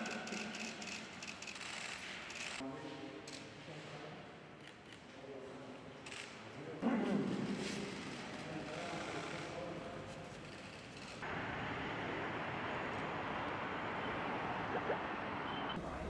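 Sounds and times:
road traffic noise: 11.1 - 16.0
faint voices: 14.1 - 16.0.

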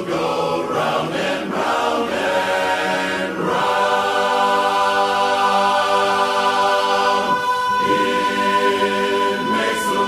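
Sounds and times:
men's chorus singing a cappella: 0.0 - 10.0.

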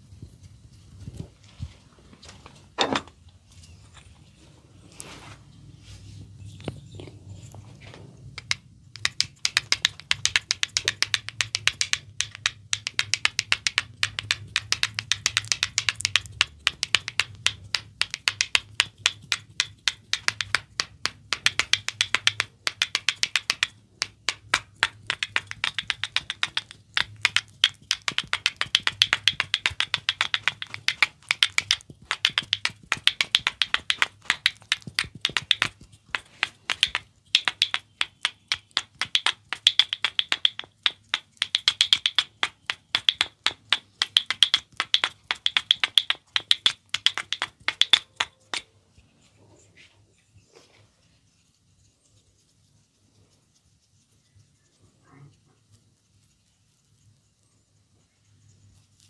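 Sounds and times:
wooden sticks clicking together: 8.4 - 48.7.

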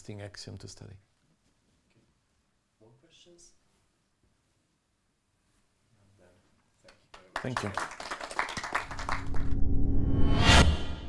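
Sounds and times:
audience applause: 7.1 - 9.6
whoosh: 9.1 - 11.0.

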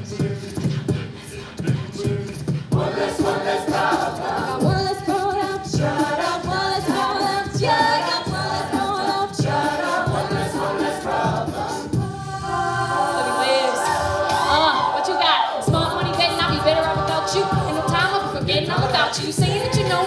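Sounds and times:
a cappella group singing: 0.0 - 20.0
vocal beat: 0.0 - 20.0
woman singing lead: 4.5 - 10.6, 12.0 - 20.0.

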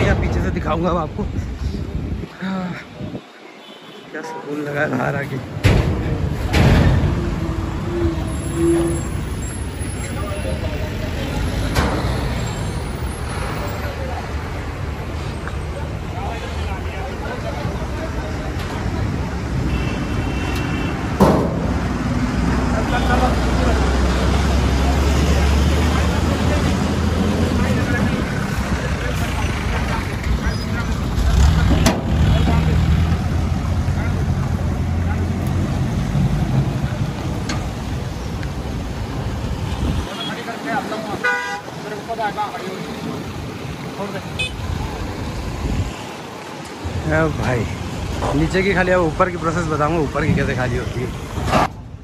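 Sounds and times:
road traffic hum: 0.0 - 52.0
sharp knock: 21.2 - 21.8.

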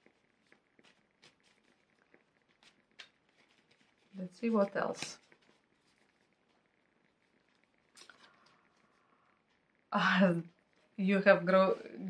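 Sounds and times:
faint rustle: 0.0 - 12.0.

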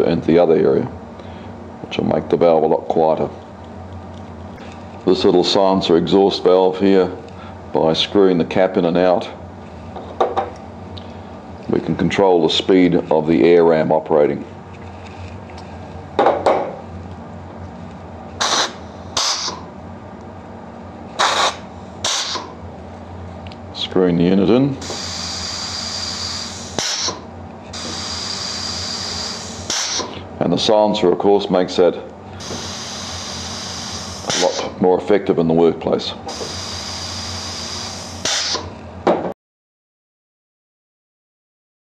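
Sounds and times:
compressed air hissing: 18.4 - 19.7, 21.2 - 22.6, 24.8 - 30.3, 32.4 - 34.8, 36.2 - 38.8.

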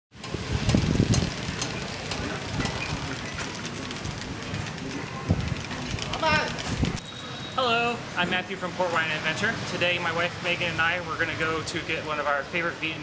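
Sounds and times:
traffic noise: 0.1 - 13.0
vehicles passing: 0.2 - 13.0.

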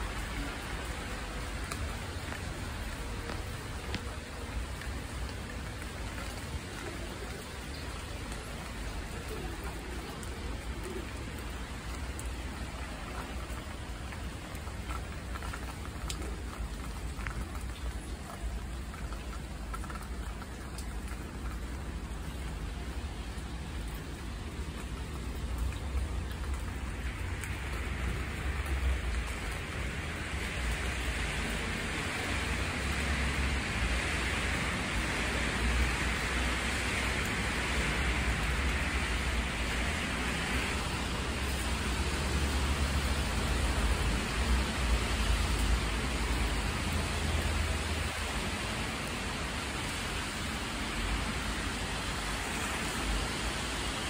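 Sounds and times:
steady rain hiss: 0.0 - 54.0.

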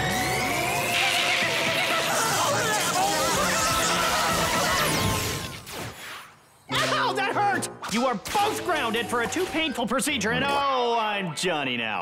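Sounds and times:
music: 0.0 - 5.4, 6.7 - 9.6.

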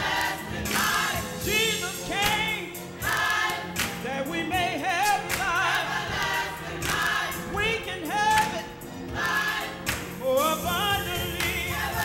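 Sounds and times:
choir singing gospel song: 0.0 - 12.0
low accompaniment with beat: 0.0 - 12.0.

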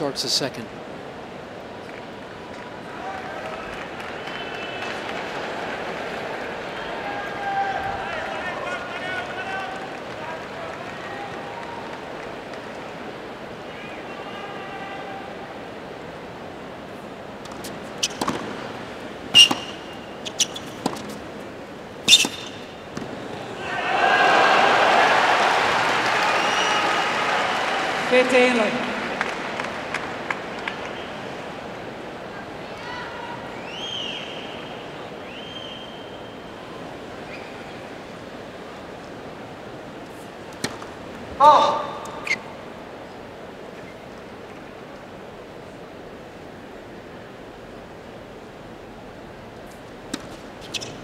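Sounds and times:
tennis ball bounces: 17.4 - 18.6, 19.3 - 21.3, 22.0 - 23.2, 50.1 - 51.0
racket hitting ball: 17.5 - 18.6, 19.3 - 21.3, 22.0 - 23.2, 50.1 - 50.8.

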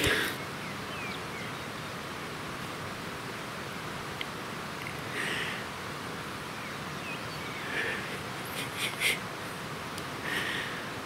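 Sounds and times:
quiet rushing hiss: 0.0 - 11.0.

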